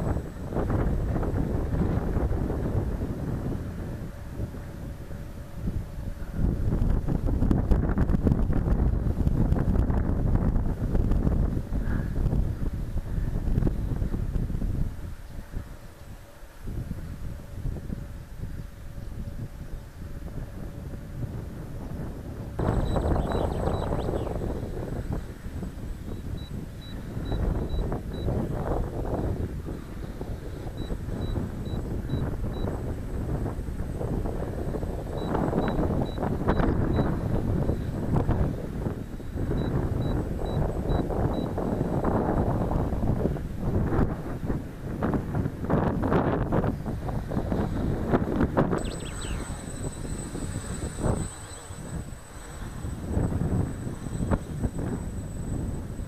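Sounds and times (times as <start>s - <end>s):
gusty wind buffeting microphone: 0.0s - 56.0s
faint high beeps: 22.6s - 24.3s, 26.1s - 28.4s, 30.8s - 32.8s, 35.2s - 38.0s, 39.6s - 41.6s, 48.8s - 56.0s.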